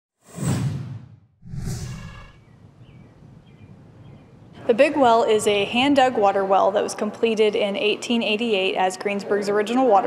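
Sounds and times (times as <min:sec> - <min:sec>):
loud whooshes: 0:00.2 - 0:02.5
faint outdoor background: 0:01.4 - 0:10.0.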